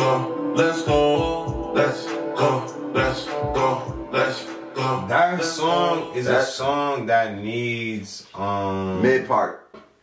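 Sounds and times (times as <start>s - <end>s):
man singing: 0.0s - 9.3s.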